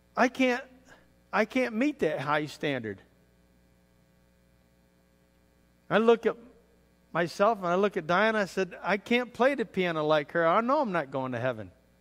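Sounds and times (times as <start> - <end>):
electrical mains hum: 0.0 - 12.0
man talking: 0.2 - 3.1, 5.9 - 11.8.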